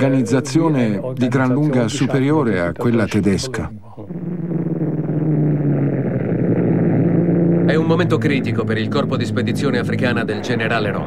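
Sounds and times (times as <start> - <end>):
propeller aircraft engines droning: 4.1 - 11.0.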